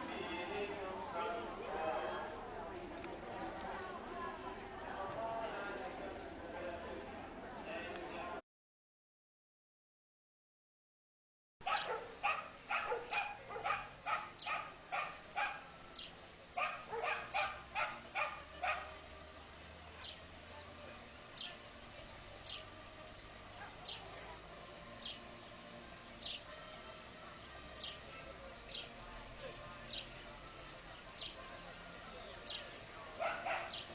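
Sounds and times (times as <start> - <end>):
dog barking: 11.6 - 15.7, 16.6 - 19.0, 33.2 - 33.9
bird chirping: 11.6 - 20.3, 21.1 - 26.7, 27.3 - 29.0, 29.6 - 33.9.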